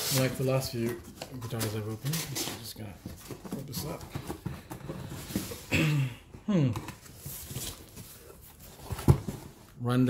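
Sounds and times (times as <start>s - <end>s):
cardboard rustling and scraping: 0.0s - 5.7s, 6.8s - 9.8s.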